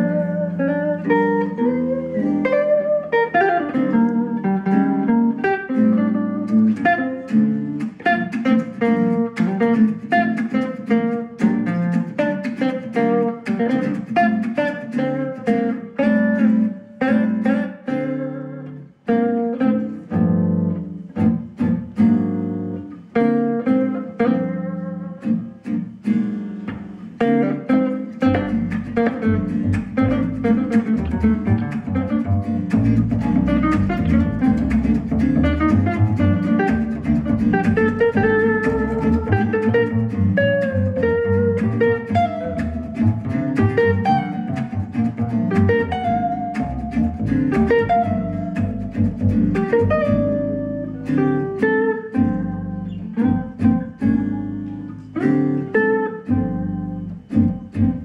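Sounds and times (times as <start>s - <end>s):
double bass line: 0.0s - 25.6s, 26.7s - 58.0s
acoustic guitars playing: 0.0s - 58.0s.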